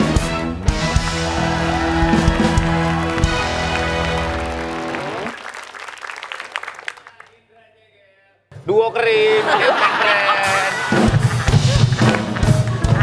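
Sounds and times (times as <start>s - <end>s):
people clapping: 1.3s - 7.5s, 10.7s - 13.0s
live band playing chord: 2.0s - 5.4s.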